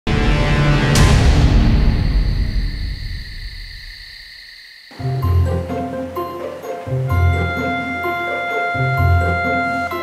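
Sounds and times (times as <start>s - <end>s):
music sting: 0.1s - 3.6s
night insects chirring: 1.0s - 10.0s.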